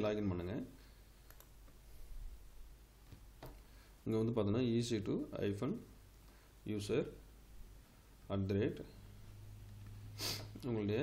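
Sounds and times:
low steady hum: 0.0s - 11.0s
faint computer clicks: 1.2s - 1.8s.

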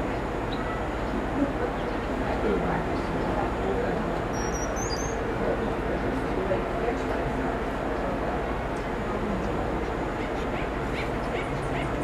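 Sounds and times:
steady background hum: 0.0s - 12.0s
small animal chirping: 4.3s - 5.2s.

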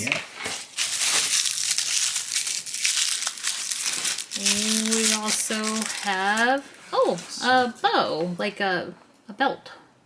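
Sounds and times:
person speaking: 0.0s - 0.3s, 4.4s - 8.9s
tissue paper crinkling: 0.3s - 7.8s.

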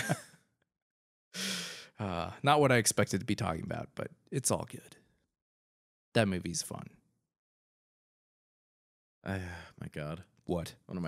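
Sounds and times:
man laughing: 0.0s - 0.3s
short breathy sigh: 1.4s - 2.1s.

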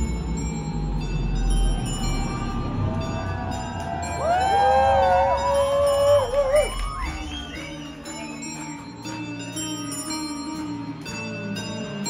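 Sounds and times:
bell-like tones: 0.0s - 12.0s.

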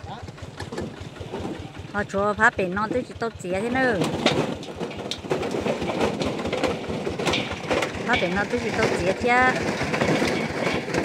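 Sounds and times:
clattering of small hard knocks: 3.7s - 11.0s.

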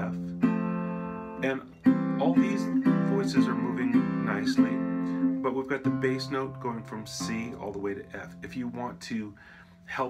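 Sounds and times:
resonator guitar chords strummed: 0.0s - 10.0s.

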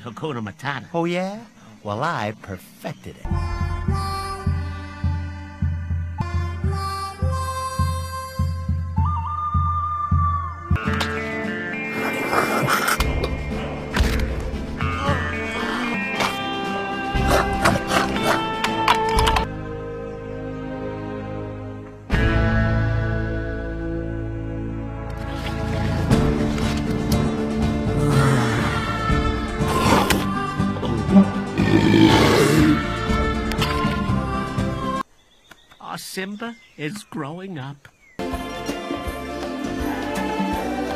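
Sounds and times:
film score music: 2.4s - 35.0s
wet eating sound effect: 11.9s - 13.3s.

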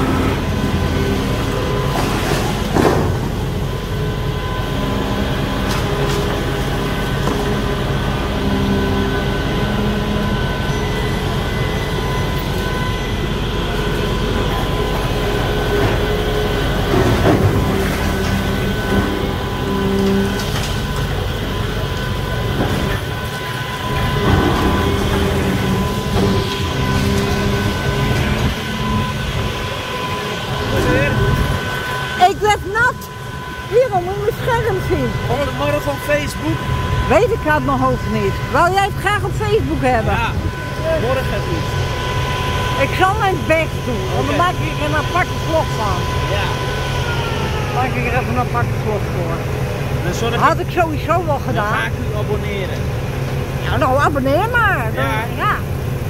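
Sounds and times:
excavator engine drone: 0.0s - 56.0s
high steady tones: 18.5s - 52.4s.

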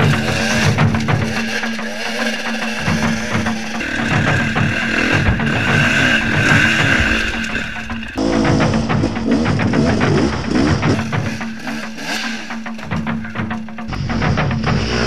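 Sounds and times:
dirt bike engines revving: 0.0s - 15.0s
music track: 0.0s - 15.0s.

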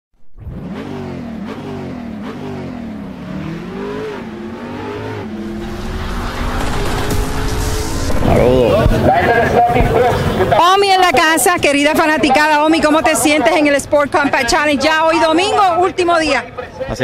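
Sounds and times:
car engine revving: 0.4s - 10.6s
rushing noise: 4.4s - 9.7s.

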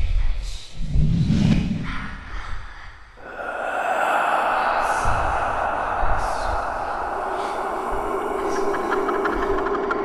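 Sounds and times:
droning horror music: 3.2s - 10.0s
faint whooshes: 3.2s - 10.0s.

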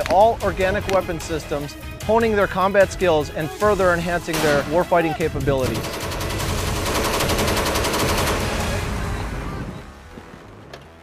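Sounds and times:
machine gun firing automatic burst: 5.6s - 9.0s.

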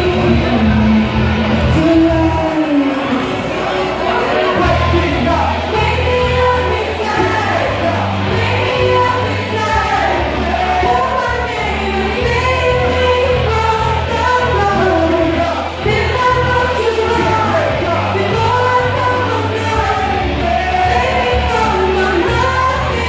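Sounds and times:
amplified singing: 0.0s - 23.0s
backing music with bass line: 0.0s - 23.0s.

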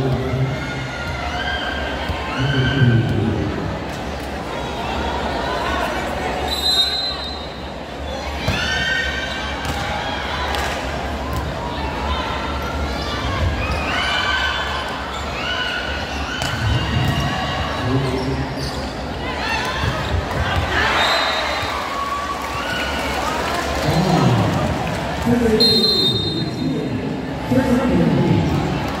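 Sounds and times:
people shouting and cheering: 0.0s - 7.2s, 8.0s - 18.3s, 19.1s - 29.0s.

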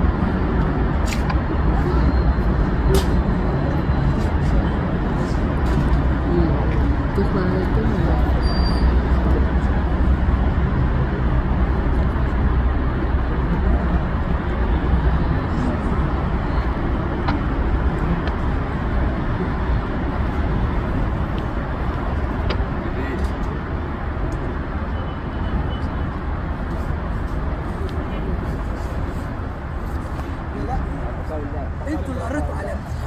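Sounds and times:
crowd voices: 0.0s - 25.0s.

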